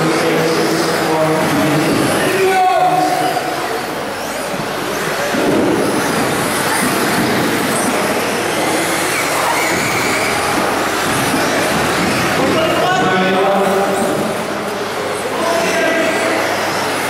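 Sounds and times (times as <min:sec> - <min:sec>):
rc car motor whine: 0:02.0 - 0:12.4.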